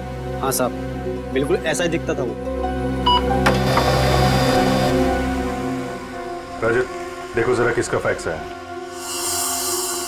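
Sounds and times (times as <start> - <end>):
fax machine beep: 3.1 - 4.6
fax machine whirring: 3.1 - 5.2.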